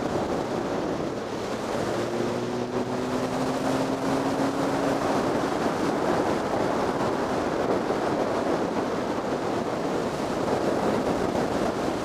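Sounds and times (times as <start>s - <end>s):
motorcycle engine cruising: 0.0s - 12.0s
rushing wind noise: 0.0s - 12.0s.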